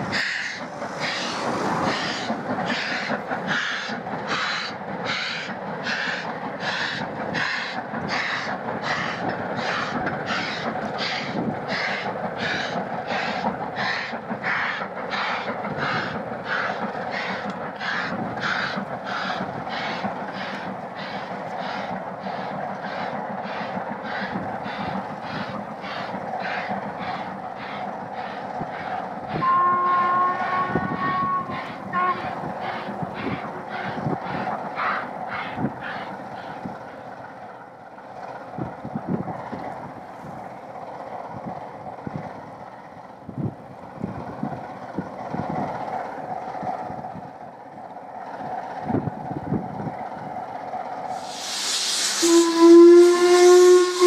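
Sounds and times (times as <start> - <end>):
steam locomotive chuffing: 0.0 - 54.0
train whistle: 29.3 - 34.0, 51.2 - 54.0.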